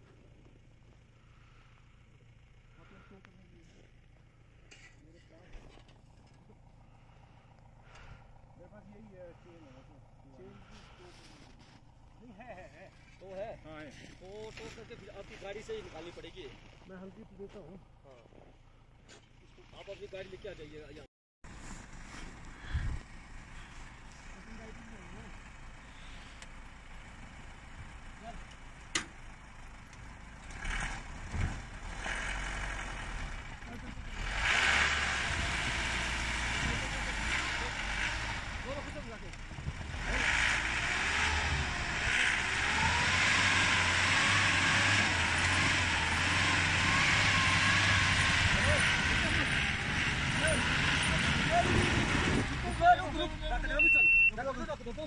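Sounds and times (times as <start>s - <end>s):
vehicle engines revving: 1.2s - 13.3s, 21.5s - 55.0s
people's voices: 48.2s - 55.0s.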